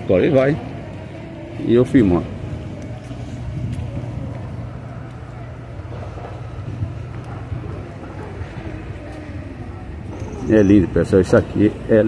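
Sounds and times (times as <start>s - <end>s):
faint voices: 0.0s - 12.0s
steady low hum: 0.0s - 12.0s.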